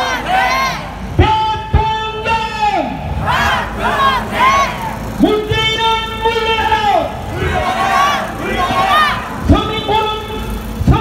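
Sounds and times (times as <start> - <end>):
crowd shouting: 0.0 - 1.2, 2.8 - 5.6, 6.4 - 11.0.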